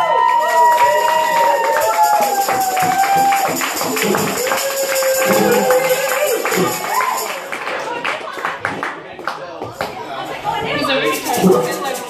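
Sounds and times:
acoustic guitar: 2.0 - 7.4, 10.4 - 12.0.

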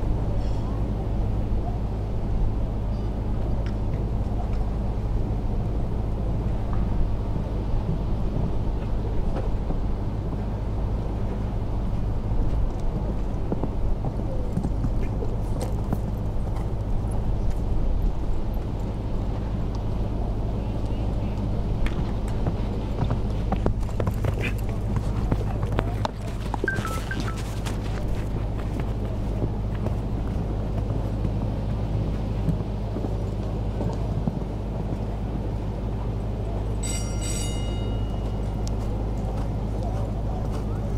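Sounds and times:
steady low rumble: 0.0 - 40.9
horse hoofbeats on sand: 7.9 - 19.7, 20.8 - 36.2, 37.6 - 40.9
short pitched tone: 26.6 - 27.6.

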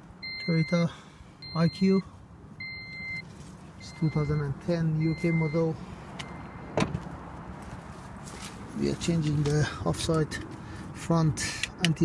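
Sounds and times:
steady electronic beep: 0.2 - 0.8, 1.4 - 1.9, 2.6 - 3.2, 3.8 - 6.7
car door shutting: 6.2 - 7.1.

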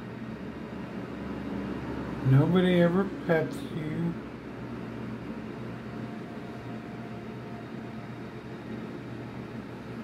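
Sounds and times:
ventilation fan hum and hiss: 0.0 - 10.0.

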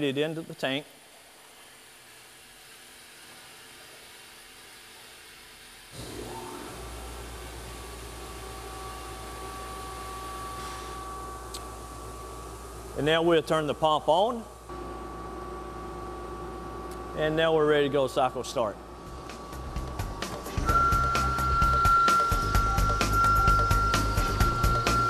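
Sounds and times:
machine hiss: 0.0 - 13.6, 19.0 - 25.0
low hum with steady tones: 5.9 - 25.0.

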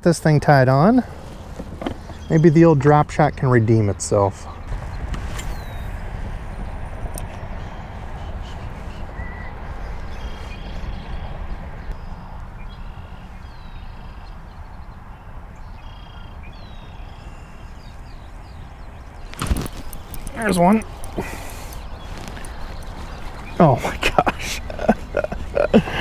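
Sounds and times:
wind buffeting microphone: 0.9 - 15.8, 16.4 - 26.0.

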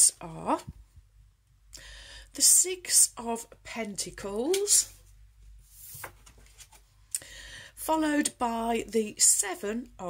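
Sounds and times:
card sliding on table: 5.7 - 6.4.

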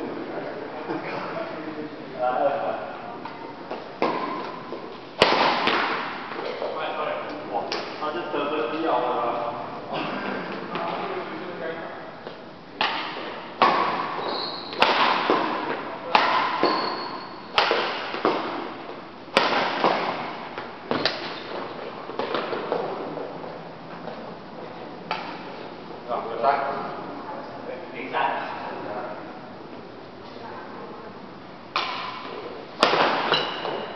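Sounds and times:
rackets striking shuttlecock: 5.2 - 6.4, 12.8 - 18.7, 19.3 - 21.5, 31.7 - 33.9.

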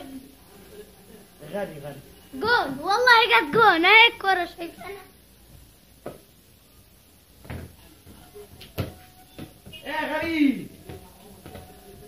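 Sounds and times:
football thumping: 6.0 - 6.3, 7.4 - 11.8.

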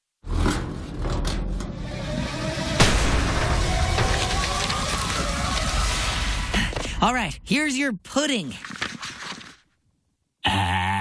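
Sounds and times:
low magical rumble: 1.7 - 6.7
sharp crackles: 2.8 - 7.0.

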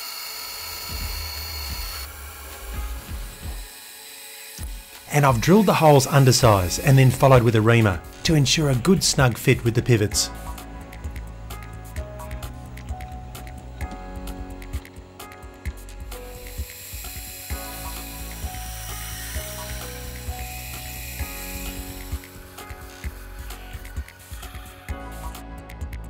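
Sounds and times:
high hiss of cutting: 0.0 - 10.6, 14.8 - 25.4
soft background music: 0.2 - 26.0
rapid metallic ticking of spindle: 15.6 - 24.8.

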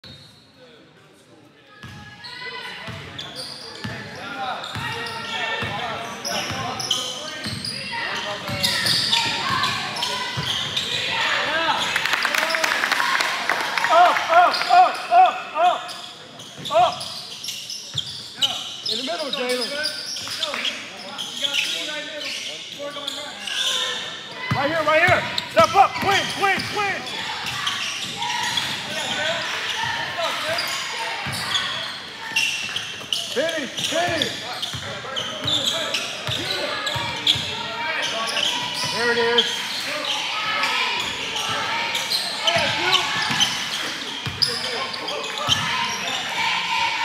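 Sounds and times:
people talking and shouting: 0.0 - 47.0.

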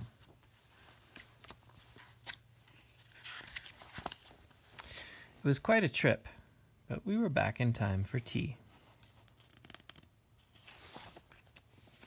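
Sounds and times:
page turning rustle: 0.0 - 5.0, 8.8 - 12.0.

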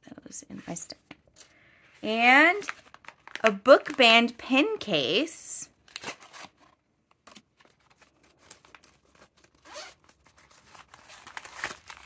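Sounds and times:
metal zipper opening: 8.4 - 10.2.

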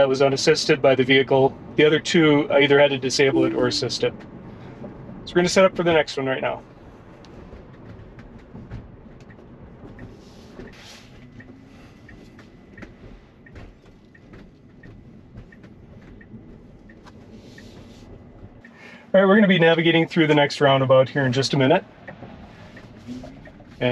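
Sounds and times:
road and tyre noise: 0.0 - 23.9
light regular tick: 9.2 - 18.8, 22.0 - 23.9.

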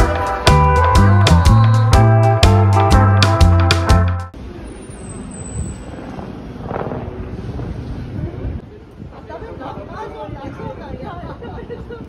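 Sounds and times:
background music: 0.0 - 4.3
steady low rumble: 4.4 - 12.0
wind noise on microphone: 4.7 - 12.0.

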